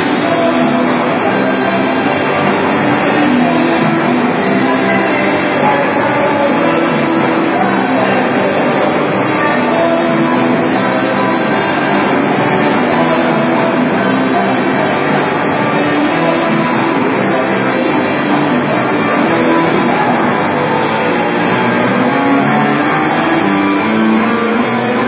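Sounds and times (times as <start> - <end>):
live rock band playing: 0.0 - 25.0.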